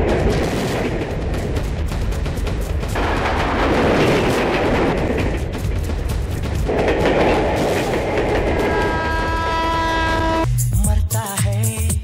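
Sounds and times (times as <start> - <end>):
train running noise: 0.0 - 10.5.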